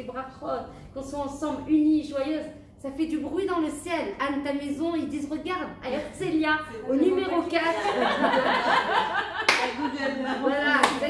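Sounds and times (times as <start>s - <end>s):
women's voices and laughter: 5.9s - 11.0s
sharp hand claps: 9.4s - 9.8s, 10.8s - 11.0s.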